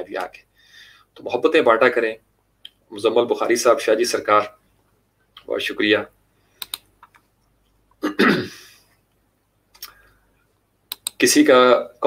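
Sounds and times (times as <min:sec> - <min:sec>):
sharp clicks: 0:06.6 - 0:07.3, 0:10.9 - 0:11.2
man clearing his throat: 0:08.0 - 0:08.8.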